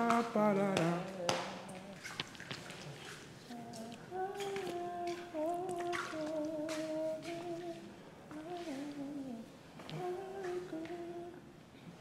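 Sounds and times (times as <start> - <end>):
person humming a tune: 0.0 - 2.0, 3.5 - 11.4.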